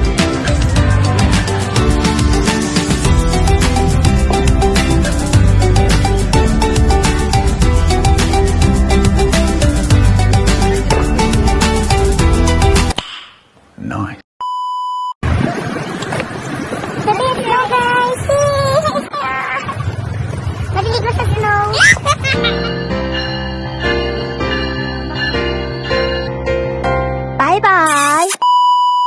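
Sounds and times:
background music: 0.0 - 13.0, 21.8 - 27.9
outdoor noise rushing: 15.2 - 25.3.

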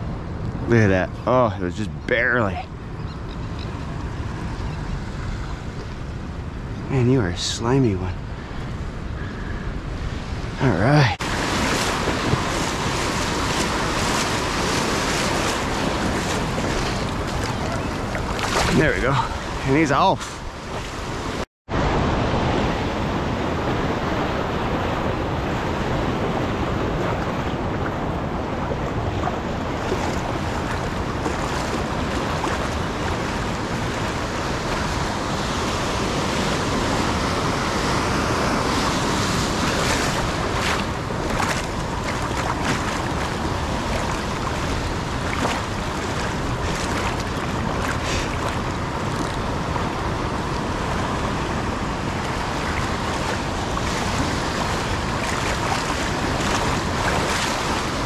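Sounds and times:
waves breaking: 0.0 - 58.0
wind buffeting microphone: 8.2 - 58.0.

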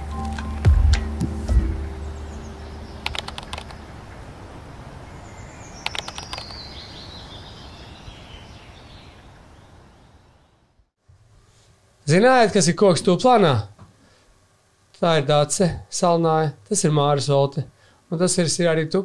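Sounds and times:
intro music: 0.0 - 3.6
quick keyboard-like clicks: 3.0 - 3.8, 5.8 - 6.6.

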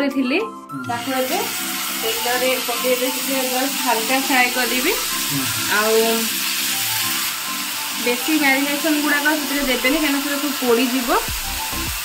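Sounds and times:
background music with singing: 0.0 - 12.0
chicken sizzling in hot oil: 0.9 - 12.0.

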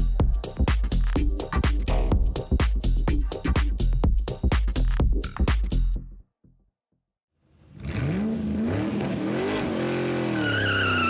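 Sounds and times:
car engine revving: 7.6 - 11.0
tyre squeal: 10.1 - 11.0.

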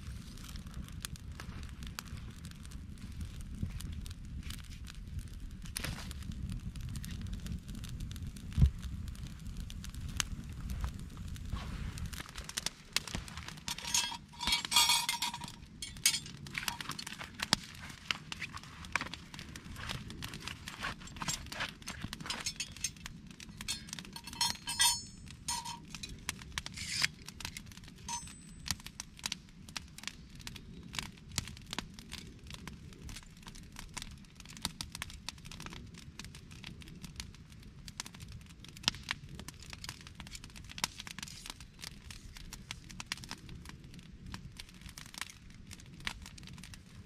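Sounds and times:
campfire crackling and popping: 0.0 - 47.0
steel tools clinking: 13.7 - 17.4, 20.9 - 26.2, 26.8 - 27.1, 28.1 - 28.6.

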